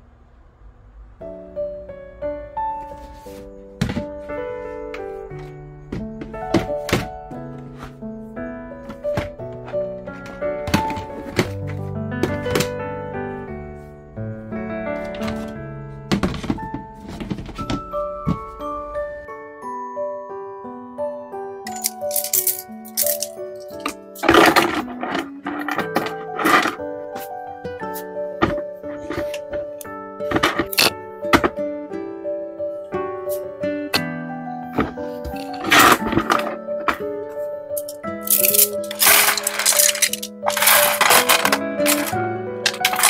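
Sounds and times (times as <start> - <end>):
light background music: 1.2 - 43.0
bamboo knitting needles rattling: 21.7 - 26.8, 35.3 - 37.0, 37.8 - 43.0.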